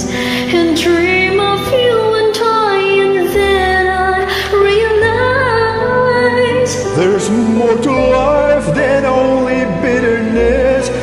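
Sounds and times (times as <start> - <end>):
karaoke backing track: 0.0 - 11.0.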